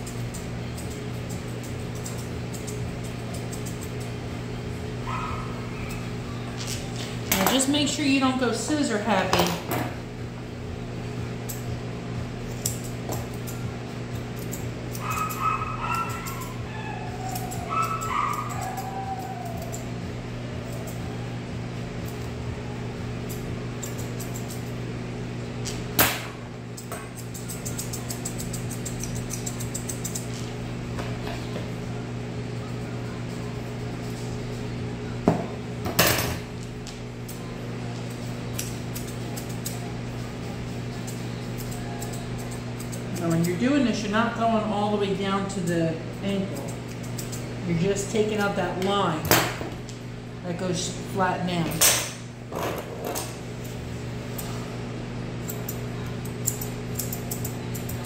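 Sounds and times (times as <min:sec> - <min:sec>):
scissors snipping hair: 0:00.0 - 0:04.2, 0:11.4 - 0:11.7, 0:12.4 - 0:19.9, 0:20.6 - 0:21.1, 0:23.2 - 0:24.8, 0:25.6 - 0:31.2, 0:36.6 - 0:37.5, 0:38.5 - 0:43.8, 0:45.5 - 0:47.5, 0:48.1 - 0:49.0, 0:53.6 - 0:54.6, 0:55.4 - 0:58.0
low electric hum: 0:00.0 - 0:58.0
dog whining: 0:05.0 - 0:06.6, 0:14.9 - 0:21.4.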